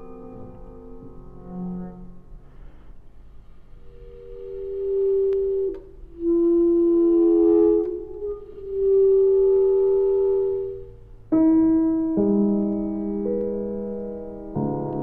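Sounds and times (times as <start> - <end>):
clarinet long held notes: 3.4 - 11.8.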